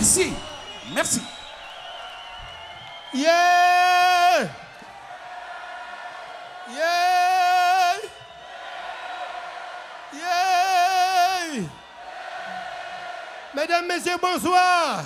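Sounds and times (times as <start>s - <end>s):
man singing wordless calls: 10.2s - 11.6s.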